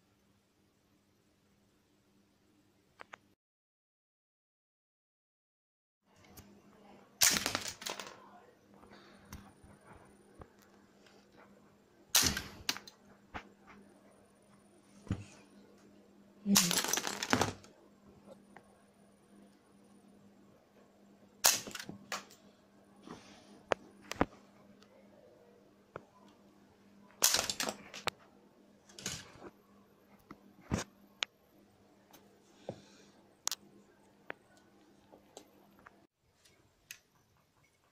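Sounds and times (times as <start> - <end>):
toy gun firing sharp crack: 7.2 - 7.8, 12.2 - 12.9, 21.4 - 22.2, 27.2 - 27.8
plastic bricks clattering: 16.5 - 17.7, 27.2 - 28.1.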